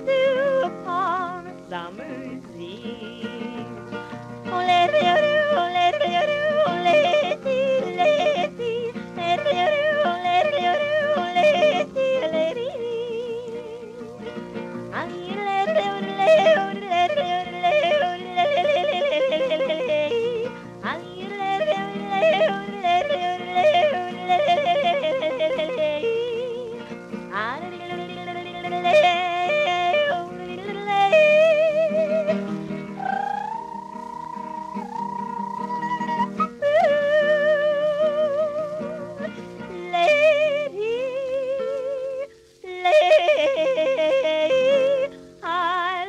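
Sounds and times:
guitar accompaniment: 0.0 - 46.0
woman yodelling: 33.0 - 39.0.

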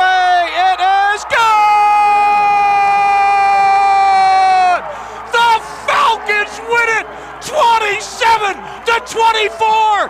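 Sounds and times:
sports announcer shouting: 0.0 - 10.0.

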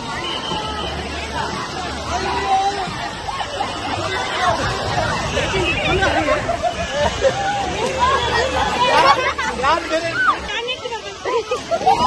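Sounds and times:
people shouting and laughing: 0.0 - 12.0.

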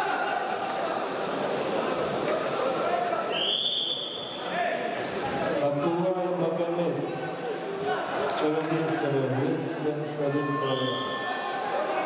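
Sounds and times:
people talking in sports hall: 0.0 - 12.0.

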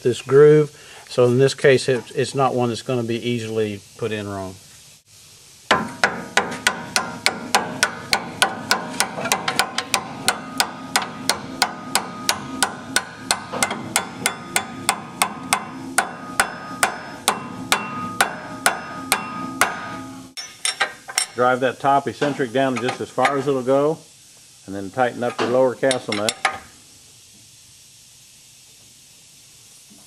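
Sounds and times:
hammer striking metal: 5.7 - 21.4.

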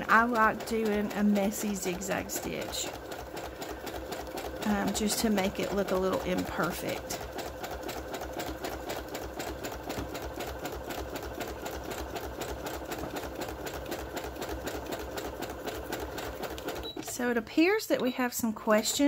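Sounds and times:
sewing machine running: 0.0 - 19.0.

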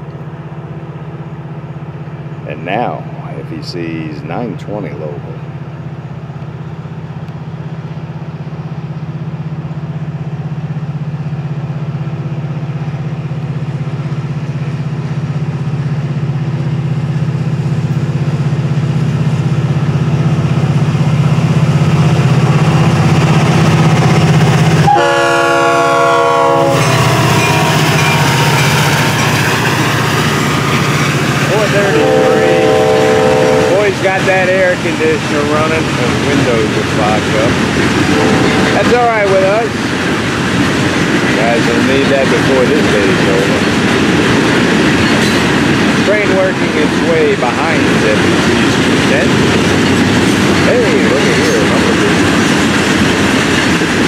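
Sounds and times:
diesel locomotive engine drone: 0.0 - 54.0
train horn: 24.8 - 29.3, 31.5 - 34.0, 38.1 - 38.9.

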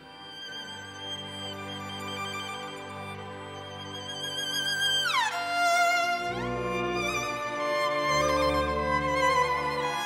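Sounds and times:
solo violin with vibrato: 0.0 - 10.0.

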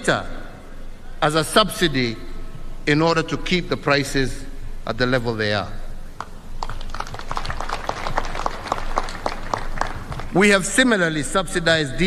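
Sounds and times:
scattered applause: 6.2 - 10.7.

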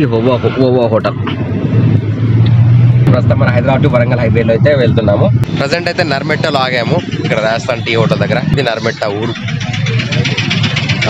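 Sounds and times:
roadside traffic: 0.0 - 11.0
vehicle engine running: 0.1 - 11.0
low rumble: 1.0 - 11.0.

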